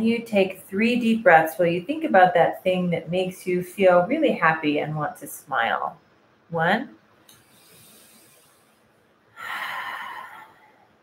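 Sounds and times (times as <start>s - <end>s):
airy exhale: 7.4s - 8.8s, 9.4s - 10.9s
person inhaling: 7.4s - 10.9s.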